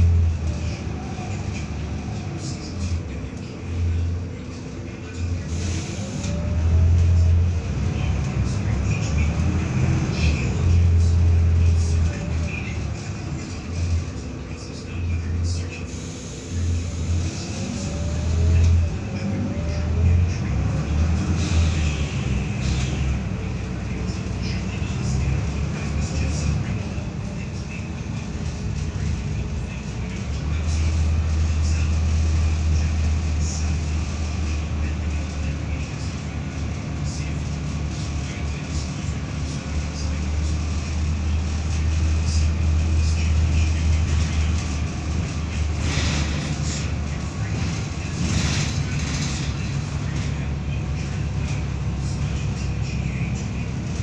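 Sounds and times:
bus diesel engine droning: 0:00.0 - 0:54.0.

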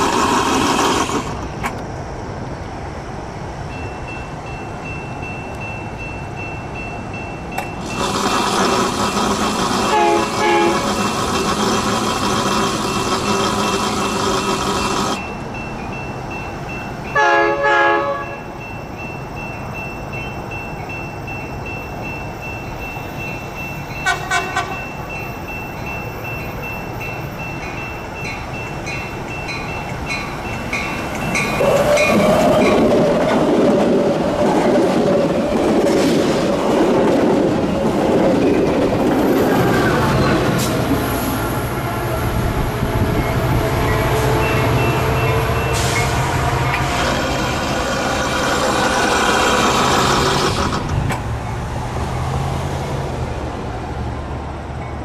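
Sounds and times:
train wheels rolling over rails: 0:00.0 - 0:03.7, 0:07.4 - 0:15.6, 0:22.8 - 0:55.0
diesel locomotive running: 0:00.0 - 0:55.0
railroad crossing bell dinging: 0:03.6 - 0:33.1, 0:37.6 - 0:49.7, 0:50.8 - 0:53.1, 0:54.7 - 0:55.0
train horn blast: 0:07.8 - 0:12.6, 0:17.2 - 0:18.5, 0:24.0 - 0:24.8, 0:39.7 - 0:50.6.

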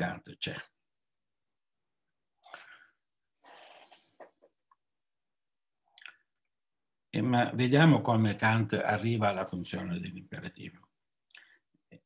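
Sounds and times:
man breathing: 0:02.4 - 0:03.9.

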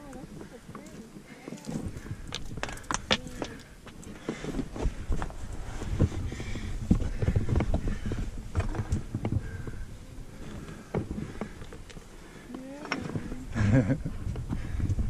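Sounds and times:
person's voice: 0:00.0 - 0:02.0, 0:03.1 - 0:03.7, 0:12.5 - 0:13.5.

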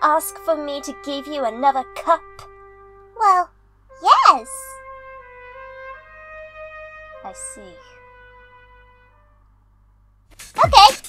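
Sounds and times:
solo trumpet sustained notes: 0:00.0 - 0:09.6.

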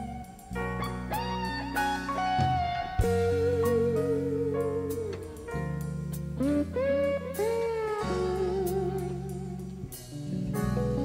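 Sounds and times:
bass notes: 0:00.0 - 0:11.0
electric lead guitar: 0:00.0 - 0:11.0.

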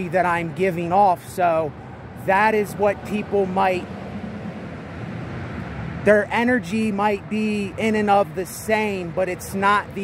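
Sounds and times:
highway traffic rushing: 0:00.0 - 0:10.0.

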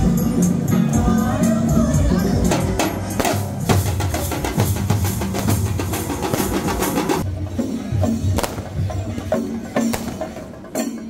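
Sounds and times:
large drums beaten with sticks: 0:02.5 - 0:10.9.

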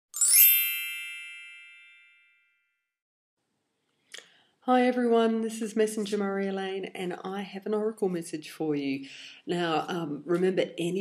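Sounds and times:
bright bell-like chime: 0:00.1 - 0:02.9.

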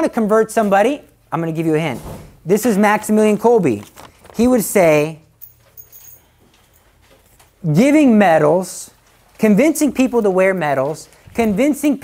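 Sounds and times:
man speaking: 0:00.0 - 0:05.3, 0:07.6 - 0:12.0.

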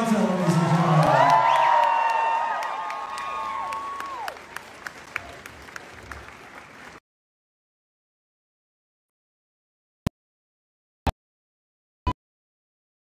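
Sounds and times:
audience applauding and cheering: 0:00.0 - 0:07.0.

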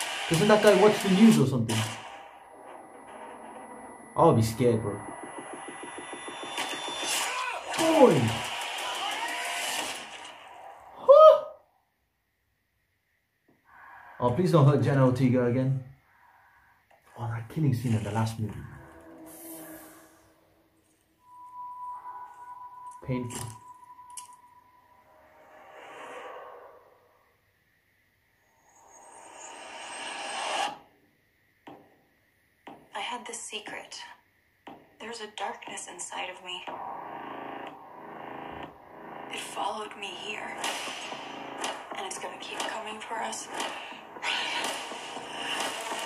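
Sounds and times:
riser: 0:00.0 - 0:10.9, 0:36.7 - 0:42.0
steady tone: 0:01.7 - 0:08.5, 0:17.6 - 0:27.4, 0:36.6 - 0:44.2.

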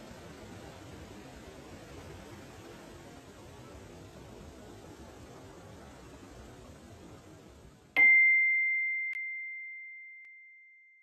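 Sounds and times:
high bell-like chime: 0:08.0 - 0:11.0.

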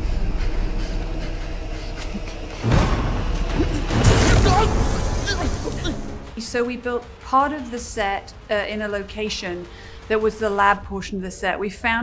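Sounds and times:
steady low rumble: 0:00.0 - 0:04.0.

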